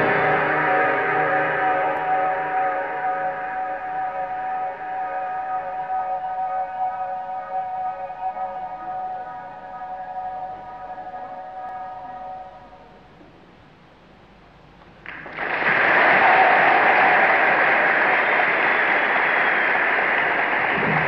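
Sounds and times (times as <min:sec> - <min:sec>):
band holding final chord: 0:00.0 - 0:04.7
audience applause: 0:15.0 - 0:21.0.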